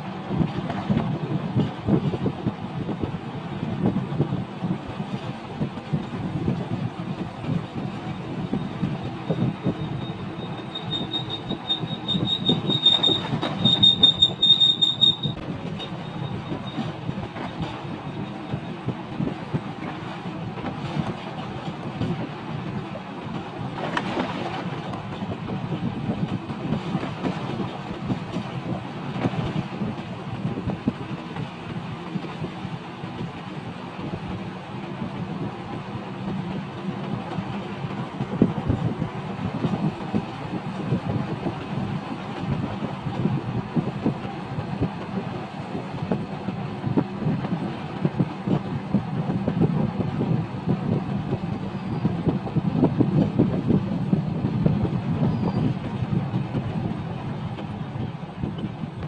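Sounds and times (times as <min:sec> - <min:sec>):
vehicle rumbling on concrete road: 0:00.0 - 0:59.0.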